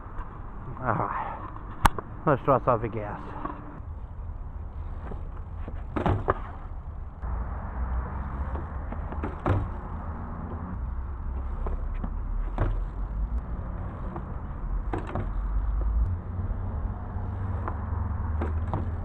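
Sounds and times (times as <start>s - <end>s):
bike tyres rolling on concrete: 4.7s - 19.0s
sharp knocks: 8.5s - 10.7s, 14.1s - 15.4s.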